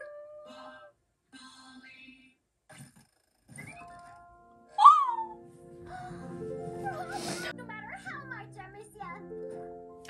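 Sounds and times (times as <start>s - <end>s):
music with held notes: 4.2s - 10.0s.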